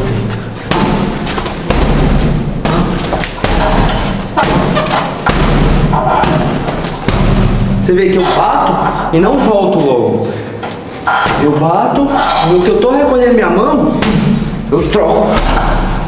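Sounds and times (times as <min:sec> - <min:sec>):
punches thudding on punching bag: 0:00.7 - 0:07.9, 0:13.9 - 0:16.0.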